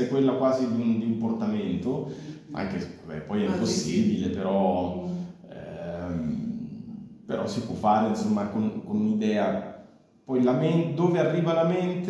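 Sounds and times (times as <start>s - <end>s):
person murmuring: 2.4s - 4.6s, 5.5s - 7.0s.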